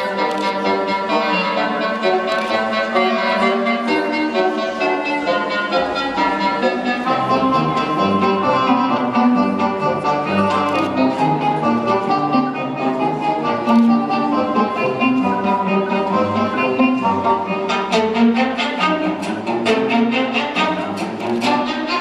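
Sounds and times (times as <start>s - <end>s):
instrumental music with strings: 0.0s - 22.0s.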